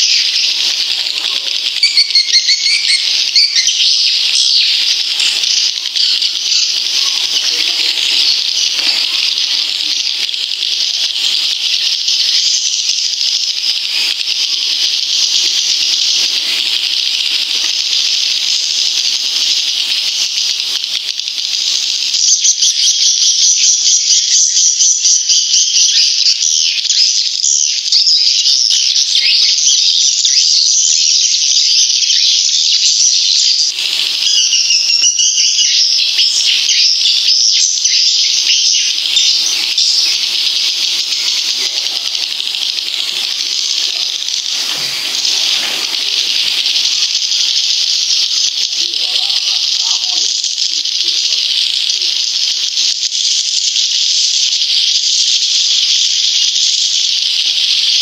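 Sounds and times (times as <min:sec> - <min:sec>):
swiftlets chirring: 0:33.2 - 0:54.4.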